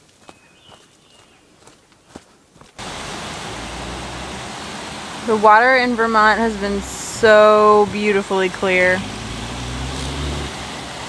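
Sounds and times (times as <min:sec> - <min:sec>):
footsteps on dirt trail: 0:00.0 - 0:02.8
river rapids rushing: 0:02.8 - 0:11.0.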